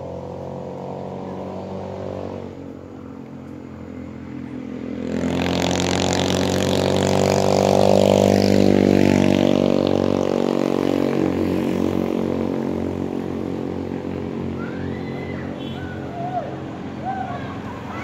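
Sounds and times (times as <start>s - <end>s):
steady engine hum: 0.0s - 18.0s
vehicle passing: 0.0s - 18.0s.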